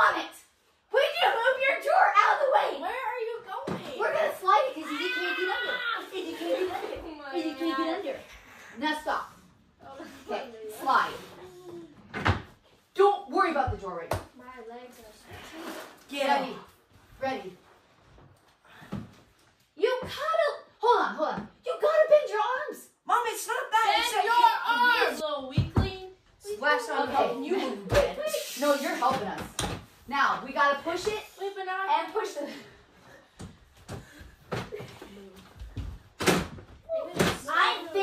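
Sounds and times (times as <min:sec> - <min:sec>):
people talking: 0:01.0 - 0:11.9, 0:19.8 - 0:32.7, 0:36.9 - 0:38.0
people laughing: 0:05.5 - 0:07.7.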